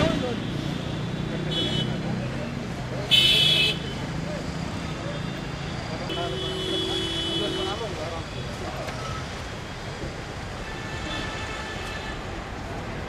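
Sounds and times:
traffic rumble: 0.0 - 13.0
vehicle horn honking: 6.1 - 7.9.

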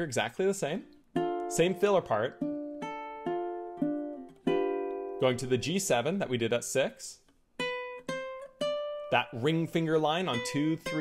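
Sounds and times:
ukulele notes plucked: 1.1 - 5.8, 7.6 - 11.0.

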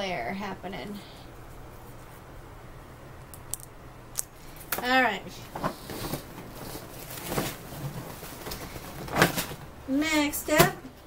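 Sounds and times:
plastic-wrapped packs rustling: 5.5 - 9.7.

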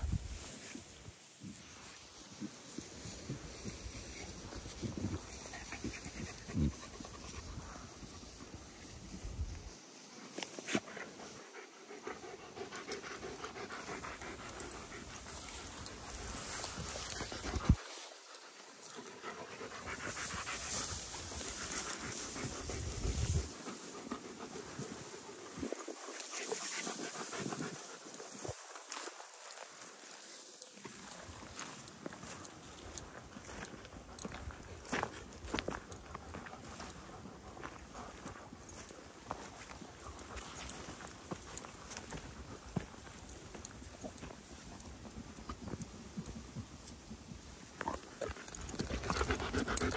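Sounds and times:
rustling through tall grass: 0.0 - 12.3, 13.1 - 35.6, 36.3 - 44.6
footsteps: 0.0 - 46.3
dog panting: 10.7 - 28.5, 47.9 - 49.9.

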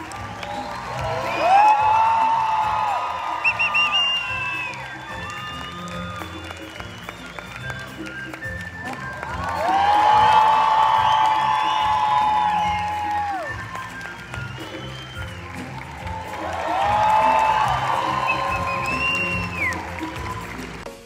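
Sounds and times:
audience applause and cheering: 0.0 - 21.0.

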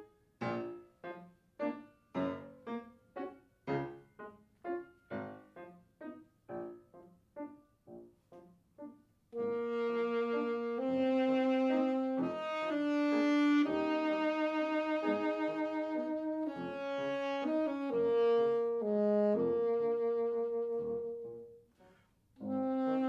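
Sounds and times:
grand piano accompaniment: 0.0 - 21.7
alto saxophone melody: 8.3 - 23.0.

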